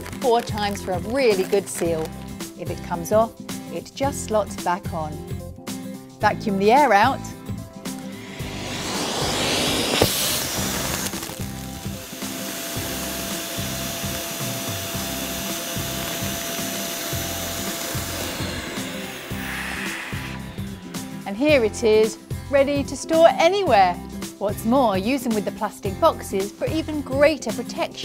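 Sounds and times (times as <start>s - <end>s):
vacuum cleaner sucking air: 7.8s - 22.4s
steady whine: 7.9s - 21.9s.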